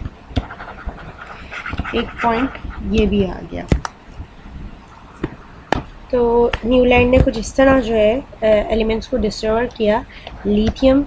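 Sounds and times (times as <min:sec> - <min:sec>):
stylus tapping tablet screen: 0:00.0 - 0:04.0, 0:05.2 - 0:08.0, 0:09.7 - 0:11.0
close breathing: 0:01.0 - 0:02.9, 0:10.1 - 0:10.5.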